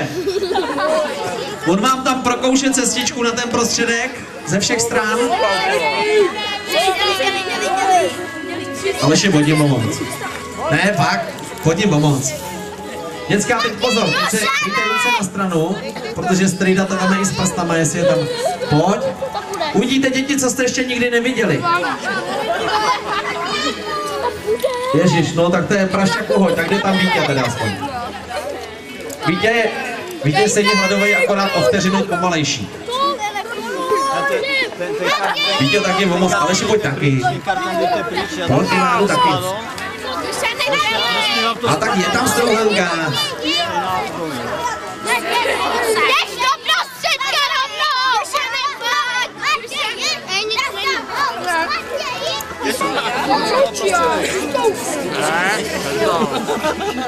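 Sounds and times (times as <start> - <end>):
crowd of children and adults talking: 0.0 - 57.0.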